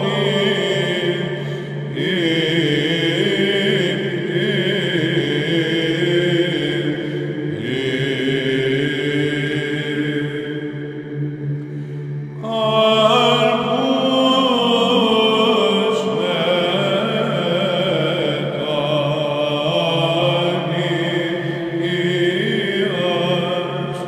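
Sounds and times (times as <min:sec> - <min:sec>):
low held vocal drone: 0:00.0 - 0:24.0
man singing ornamented chant: 0:00.0 - 0:24.0.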